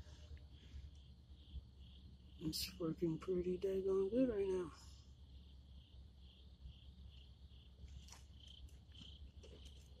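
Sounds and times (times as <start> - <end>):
faint insect chirping: 0.0 - 10.0
low steady hum: 0.0 - 10.0.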